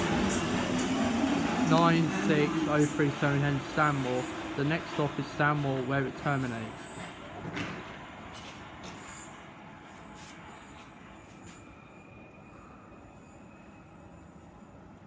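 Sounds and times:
train pulling away rumbling: 0.0s - 15.0s.

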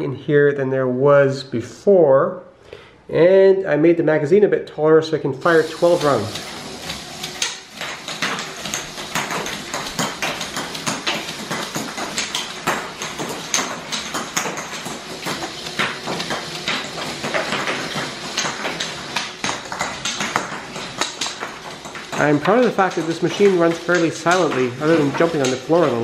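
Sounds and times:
machine knocking on wooden floor: 5.6s - 26.0s.

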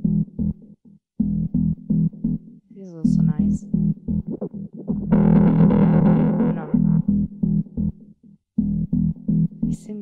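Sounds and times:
choppy synth bass line: 0.0s - 2.4s, 3.0s - 10.0s
distorted delay swell: 3.0s - 7.1s.

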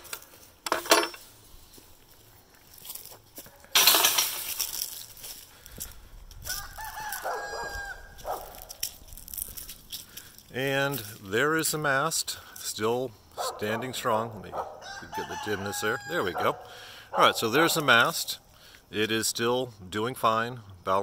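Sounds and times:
rooster crowing: 6.4s - 8.5s, 14.6s - 16.7s.

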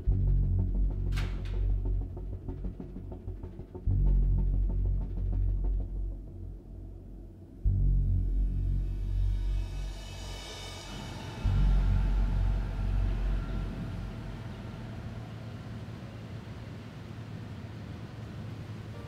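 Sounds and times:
deep bass booms: 0.0s - 6.6s, 7.6s - 10.0s
high shimmering swell: 9.0s - 16.3s.

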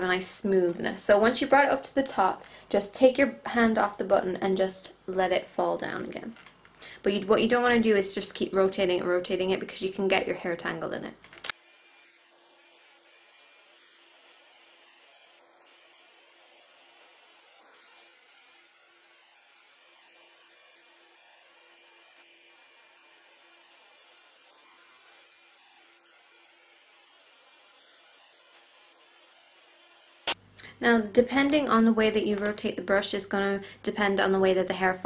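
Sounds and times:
hot air brush whirring: 11.4s - 30.4s.

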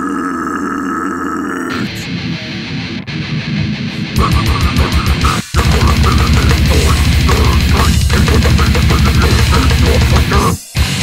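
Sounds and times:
guttural growl vocal: 0.0s - 2.1s, 4.2s - 10.6s
metal drums and guitars: 1.7s - 11.0s
sustained guitar note: 1.8s - 11.0s.

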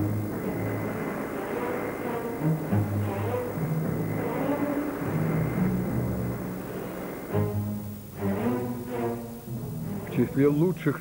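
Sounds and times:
propeller aircraft engines droning: 0.0s - 11.0s.

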